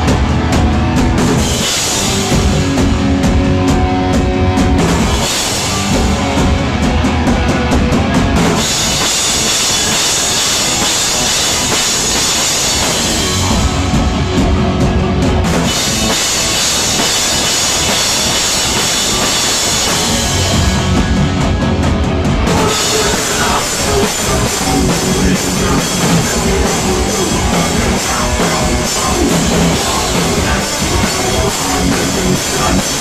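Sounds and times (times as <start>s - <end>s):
distorted electric guitars: 0.0s - 33.0s
pounding drum kit: 0.0s - 33.0s.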